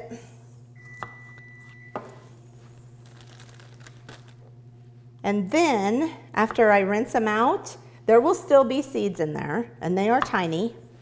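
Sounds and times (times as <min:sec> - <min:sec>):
steady low hum: 0:00.0 - 0:11.0
plastic bag crinkling: 0:02.7 - 0:04.5.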